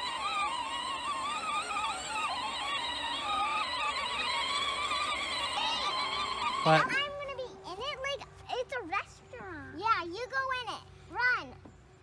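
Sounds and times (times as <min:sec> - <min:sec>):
whining electric toy tractor motor: 0:00.0 - 0:09.5.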